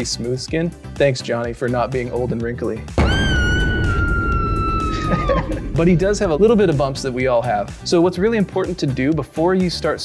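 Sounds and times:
background music: 0.0 - 10.0
high whistle-like tone: 3.0 - 7.8.

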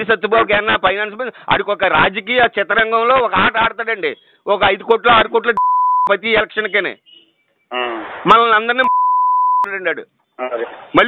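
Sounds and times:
man speaking on phone: 0.0 - 7.0, 7.7 - 11.0
censor bleep: 5.6 - 6.1, 8.8 - 9.7.

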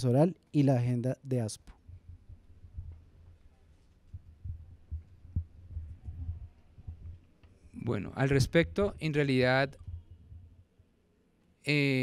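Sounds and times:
microphone handling thumps: 4.0 - 7.2.

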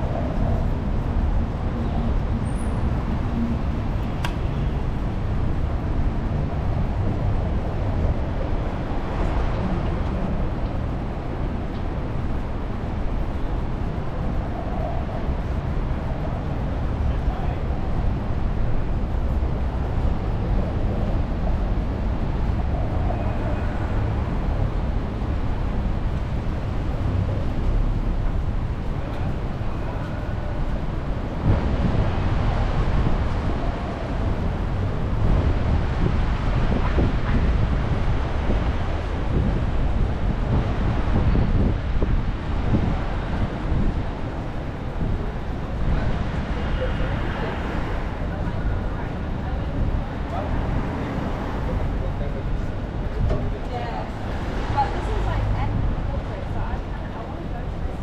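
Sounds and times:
passing traffic rumble: 0.0 - 58.0
wind on microphone: 0.0 - 58.0
passers-by's voices: 13.4 - 42.1, 42.7 - 58.0.

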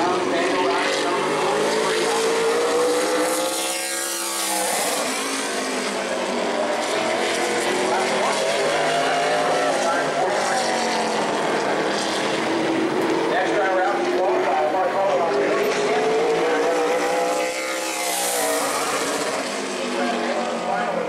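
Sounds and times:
race car engine at full throttle: 0.0 - 21.0.

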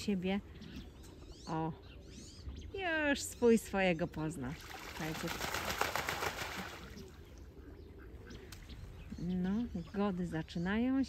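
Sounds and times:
duck splashing in water: 4.5 - 7.2.

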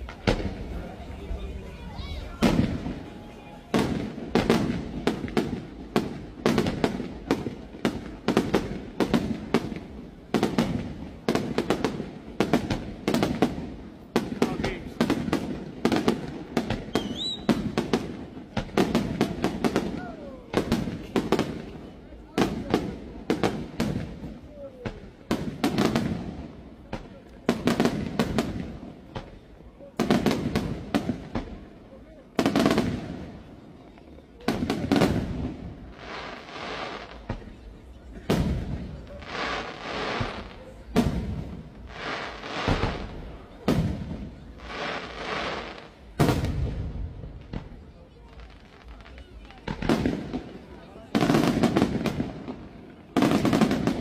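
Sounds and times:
fireworks bursting: 0.0 - 54.0.

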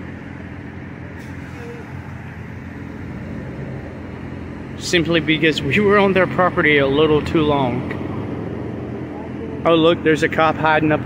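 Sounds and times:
vehicle engines and road traffic: 0.0 - 11.0.

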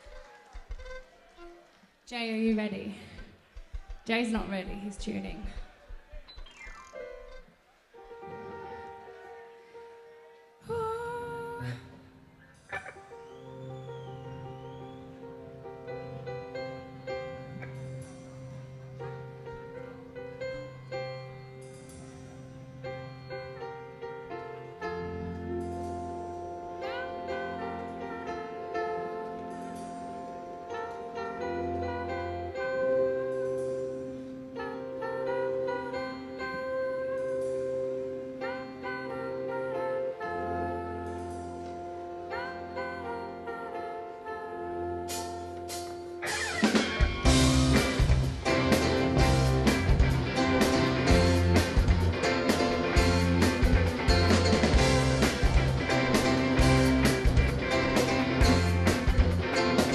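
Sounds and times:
held keyboard chords: 6.2 - 59.9
band instruments tuning up: 45.1 - 59.9.

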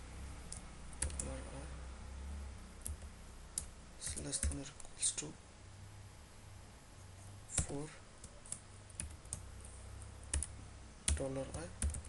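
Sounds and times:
low steady hum: 0.0 - 12.0
keyboard keystrokes: 0.5 - 1.3.

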